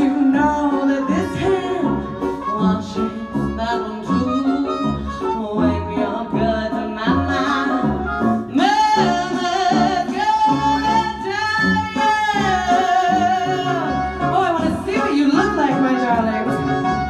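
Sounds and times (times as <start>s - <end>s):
live band playing: 0.0s - 17.0s
pulsing bass line: 0.0s - 17.0s
woman singing: 0.0s - 17.0s.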